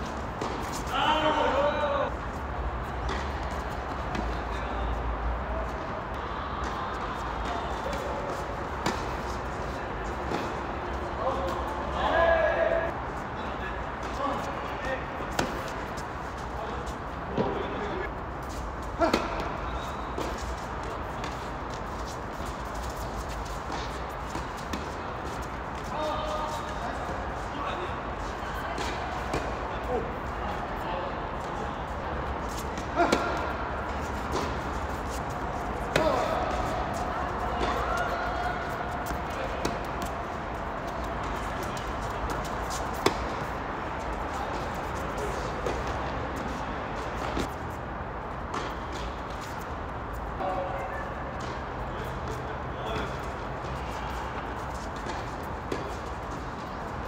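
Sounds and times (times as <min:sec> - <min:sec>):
tennis balls struck by rackets: 0:00.0 - 0:01.0, 0:06.1 - 0:10.8, 0:15.3 - 0:16.0, 0:19.0 - 0:25.9, 0:28.8 - 0:29.6, 0:32.5 - 0:47.6, 0:48.4 - 0:49.6.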